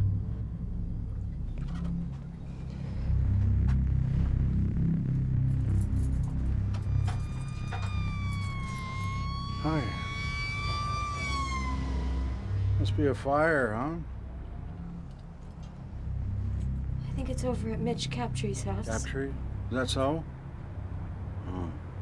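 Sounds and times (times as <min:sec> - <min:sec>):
steady low rumble: 0:00.0 - 0:22.0
wavering emergency siren: 0:05.7 - 0:16.4.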